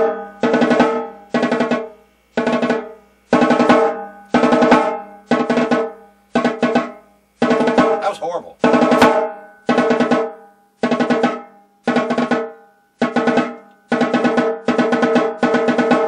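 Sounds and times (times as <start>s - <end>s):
snare drum rapid strokes: 0.0s - 16.0s.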